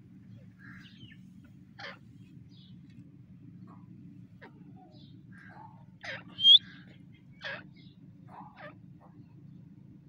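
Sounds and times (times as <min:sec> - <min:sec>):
francolin call: 0:06.4 - 0:06.6.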